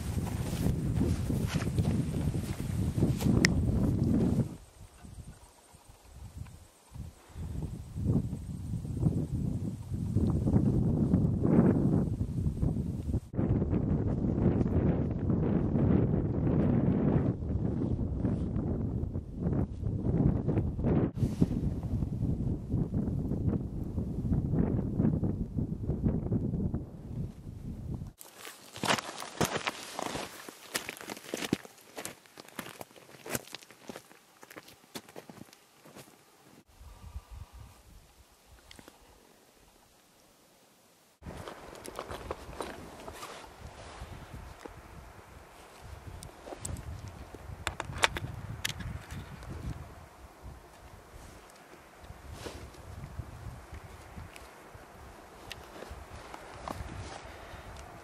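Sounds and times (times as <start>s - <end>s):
boots crunching on rocky ground: 0.0s - 4.4s, 28.2s - 36.2s, 41.2s - 44.8s, 55.4s - 57.4s
footsteps through grass: 0.0s - 4.5s, 28.2s - 36.2s.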